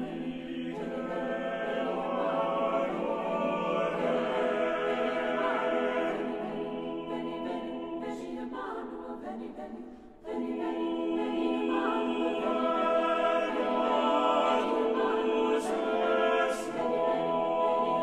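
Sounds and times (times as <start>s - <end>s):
choir singing: 0.0s - 18.0s.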